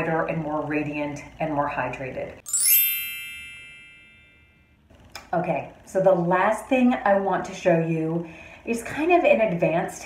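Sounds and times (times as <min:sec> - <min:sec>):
bell-like chime: 0:02.5 - 0:04.8.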